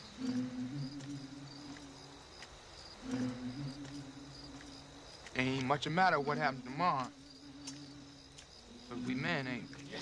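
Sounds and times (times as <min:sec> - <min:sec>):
low steady hum: 0:00.0 - 0:05.6
crickets chirping: 0:00.0 - 0:10.0.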